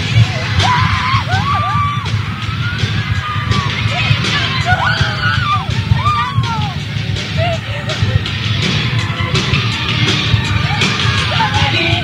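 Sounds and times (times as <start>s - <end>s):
high voices singing: 0.0s - 12.0s.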